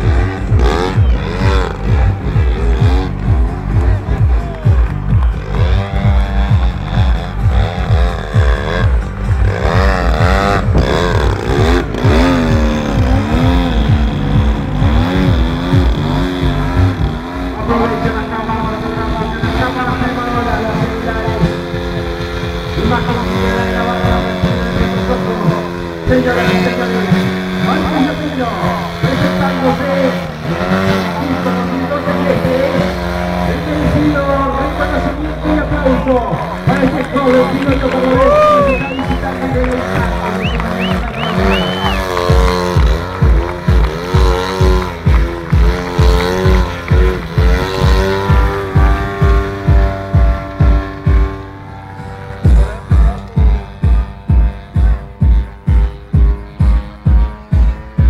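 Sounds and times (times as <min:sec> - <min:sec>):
model plane engine and propeller: 0:03.4 - 0:38.2, 0:38.8 - 0:58.0.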